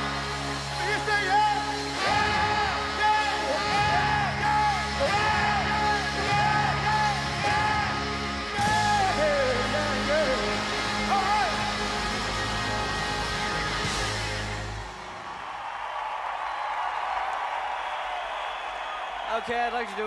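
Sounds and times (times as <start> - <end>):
live rock band playing: 0.0 - 15.0
crowd cheering and applause: 0.0 - 20.0.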